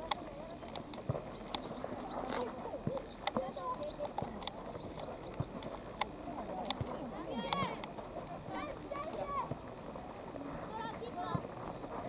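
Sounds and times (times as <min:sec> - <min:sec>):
running footsteps: 0:00.0 - 0:12.0.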